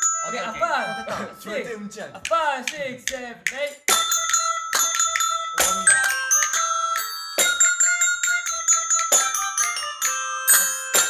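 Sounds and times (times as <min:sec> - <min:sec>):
bell-like toy instruments playing: 0:00.0 - 0:02.4, 0:03.7 - 0:11.0.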